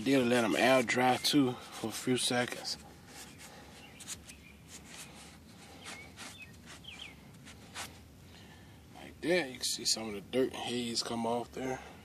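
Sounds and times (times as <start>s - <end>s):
faint rustles: 1.6s - 8.7s
bird chirps: 3.2s - 7.2s.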